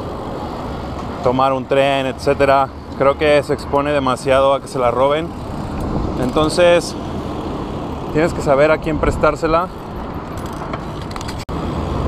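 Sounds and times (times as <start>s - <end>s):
bike tyres rolling on street: 0.0s - 9.0s
passing traffic: 0.0s - 12.0s.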